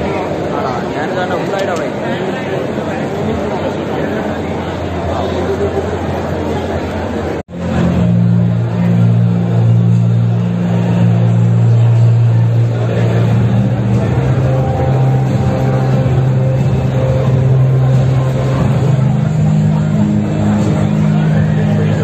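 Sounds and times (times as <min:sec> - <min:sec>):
hall noise: 0:00.0 - 0:22.0
loud low drone: 0:03.8 - 0:22.0.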